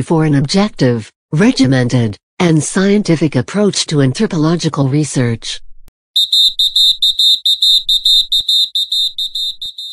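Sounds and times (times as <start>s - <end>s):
rapid electronic beeping: 6.2s - 9.9s.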